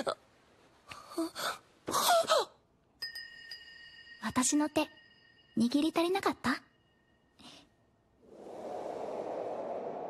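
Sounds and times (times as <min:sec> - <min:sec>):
soft whoosh: 0:08.2 - 0:10.0.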